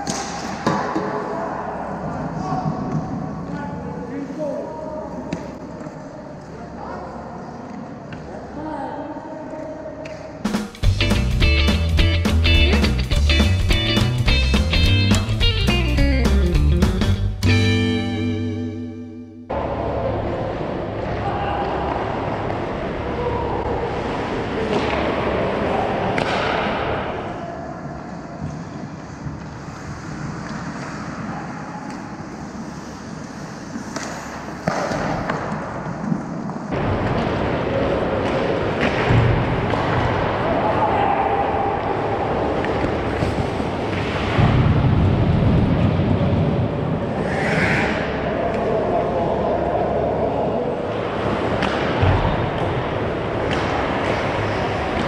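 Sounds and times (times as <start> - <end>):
hockey sticks and puck knocking: 0.0 - 1.3, 33.7 - 40.3, 53.4 - 55.0
skates scraping ice: 27.9 - 40.8.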